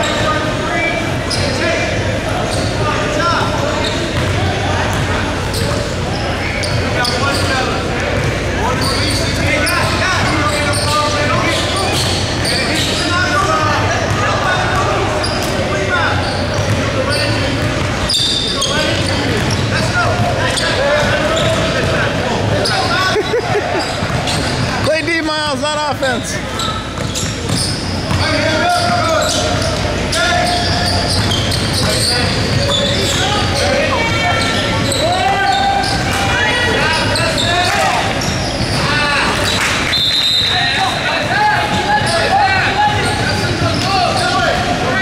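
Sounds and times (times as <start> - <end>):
voices echoing in a hall: 0.0 - 45.0.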